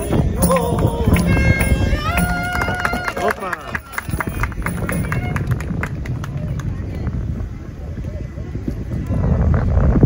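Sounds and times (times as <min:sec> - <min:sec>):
clarinet long note: 0:00.2 - 0:03.5.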